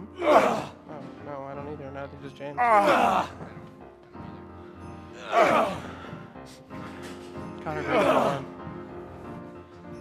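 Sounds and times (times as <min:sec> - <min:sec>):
sustained accompaniment music: 0:00.0 - 0:10.0
male chorus unison grunt: 0:00.1 - 0:00.8, 0:05.2 - 0:06.0, 0:07.8 - 0:08.5.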